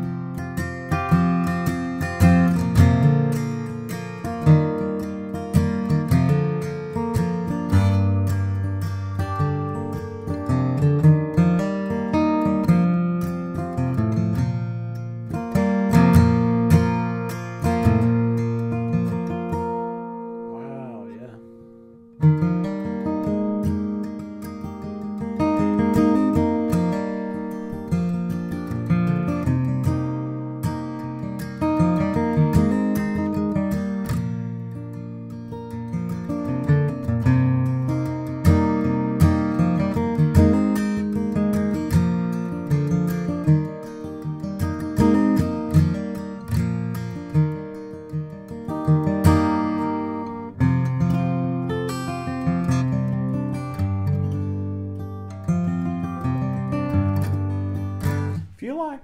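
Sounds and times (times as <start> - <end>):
acoustic guitar picking and strumming: 0.0 - 59.0.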